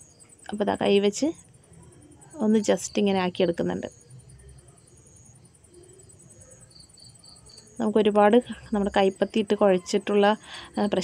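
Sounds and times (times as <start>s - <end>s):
high-pitched insect chirps: 0.0s - 11.0s
woman speaking: 0.5s - 1.4s, 2.4s - 4.0s, 7.8s - 11.0s.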